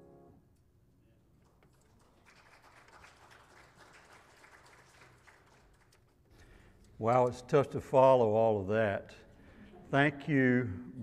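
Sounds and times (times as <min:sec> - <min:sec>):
distant applause: 0:01.9 - 0:06.0.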